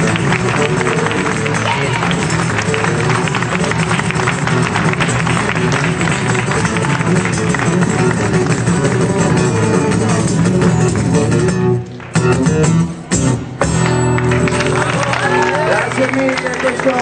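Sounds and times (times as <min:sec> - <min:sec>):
blues band with guitar: 0:00.0 - 0:17.0.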